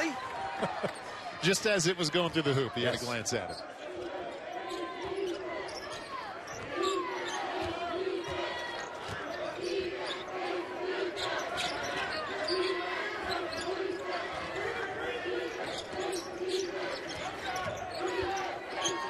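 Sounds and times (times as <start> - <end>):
crowd murmur: 0.0 - 19.0
sneaker squeaks: 2.3 - 10.5, 11.1 - 19.0.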